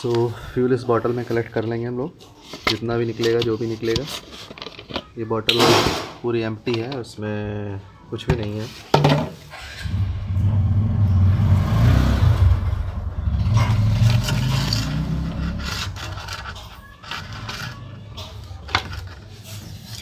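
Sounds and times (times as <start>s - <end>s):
plastic bottle scraping on metal: 13.5s - 20.0s.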